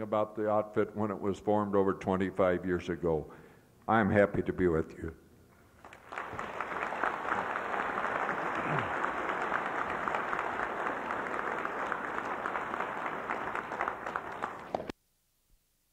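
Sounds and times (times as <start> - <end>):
audience applauding: 5.8 - 14.9.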